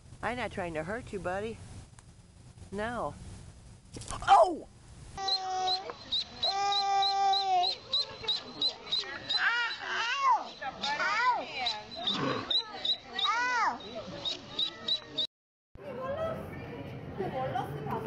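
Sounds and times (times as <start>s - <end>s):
voices: 4.2s - 18.0s
duckling peeping: 5.2s - 15.3s.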